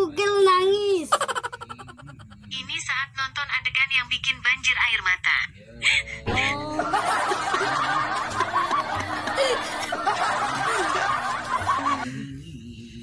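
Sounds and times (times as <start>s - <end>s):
people laughing: 1.1s - 2.5s, 6.3s - 12.2s.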